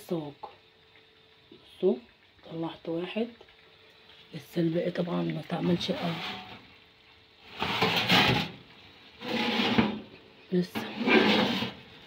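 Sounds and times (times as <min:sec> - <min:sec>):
metal tray scraping on oven rack: 0:05.8 - 0:06.6, 0:07.5 - 0:08.6, 0:09.2 - 0:10.1, 0:10.8 - 0:11.9.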